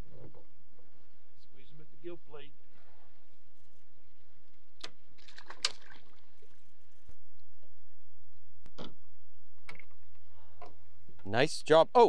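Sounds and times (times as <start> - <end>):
fish splashing in water: 5.2 - 6.5.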